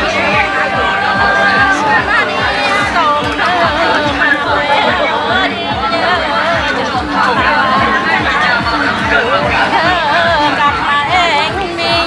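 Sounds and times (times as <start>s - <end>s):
woman singing folk song: 0.0s - 7.9s, 9.4s - 12.0s
crowd chatter: 0.0s - 12.0s
loudspeaker music with low beat: 0.0s - 12.0s.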